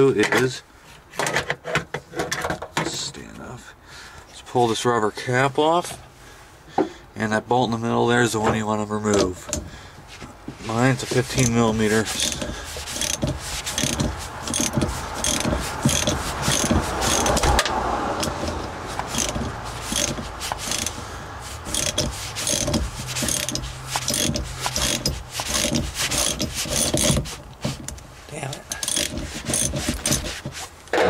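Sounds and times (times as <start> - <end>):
hand ratchet clicking: 11.1 - 30.6.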